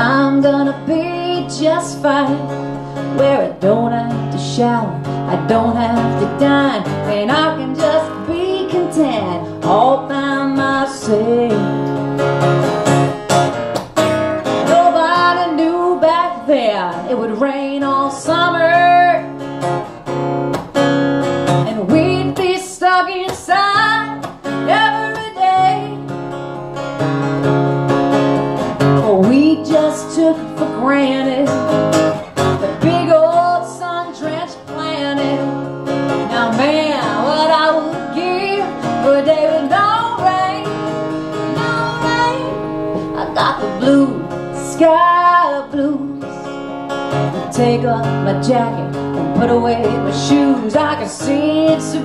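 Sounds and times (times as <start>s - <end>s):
woman singing: 0.0s - 12.1s, 14.4s - 19.6s, 21.5s - 26.2s, 28.8s - 52.0s
acoustic guitar strumming: 0.0s - 52.0s.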